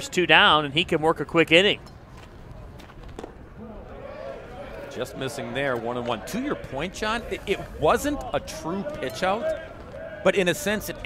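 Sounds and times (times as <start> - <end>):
faint voices: 2.4 - 11.0.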